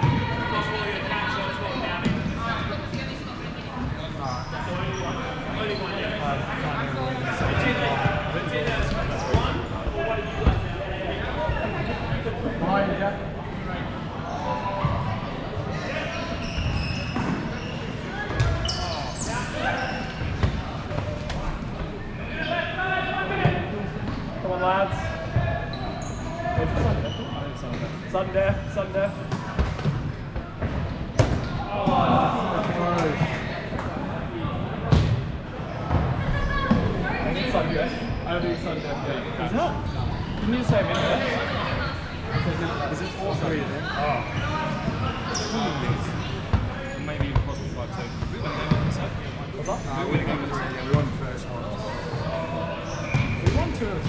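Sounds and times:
players shouting and chattering: 0.0s - 54.0s.

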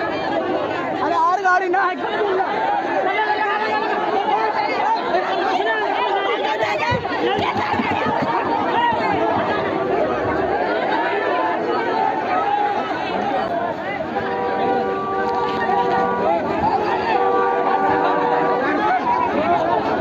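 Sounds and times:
crowd talking: 0.0s - 20.0s.

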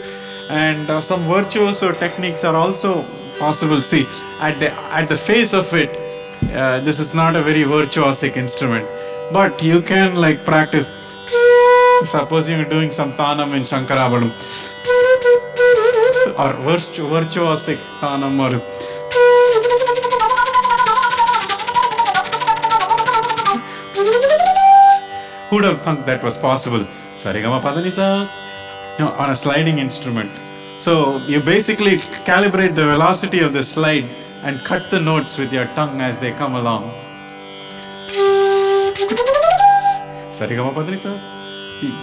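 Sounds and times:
slide flute playing a fast run: 14.9s - 16.4s, 19.1s - 25.2s, 38.1s - 40.0s.

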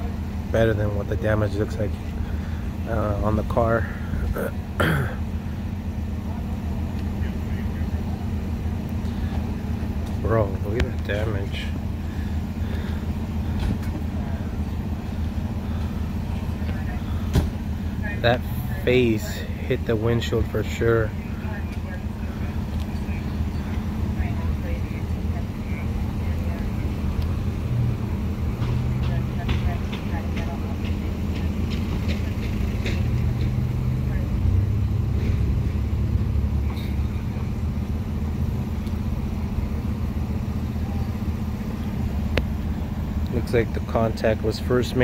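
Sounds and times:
faint voices talking: 0.0s - 45.0s
large vehicle engine idling: 0.0s - 45.0s.

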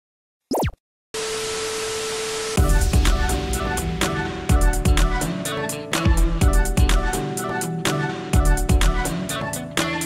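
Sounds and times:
upbeat theme music with drums: 2.6s - 10.0s.

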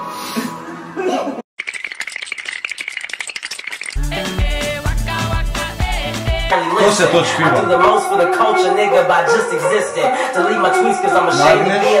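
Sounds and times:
fast rattle of clicks: 1.6s - 4.7s
steady high tone: 6.5s - 12.0s.

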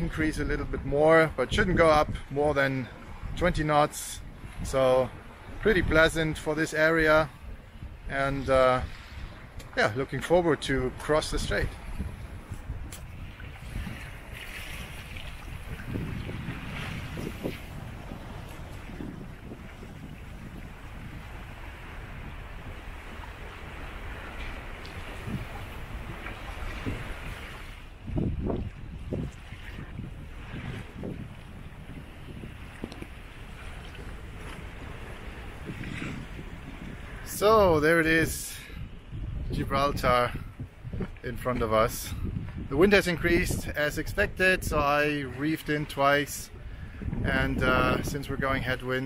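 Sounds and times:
rush of the sea: 0.0s - 49.0s
wind buffeting microphone: 0.0s - 49.0s.

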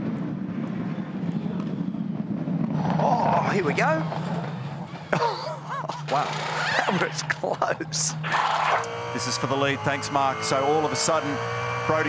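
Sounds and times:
car engine rumbling at low revs: 1.4s - 12.0s.

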